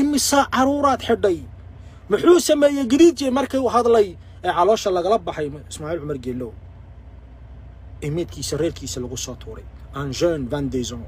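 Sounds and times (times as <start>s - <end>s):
man speaking: 0.0s - 6.6s, 8.0s - 11.0s
engine humming inside cab: 0.0s - 11.0s.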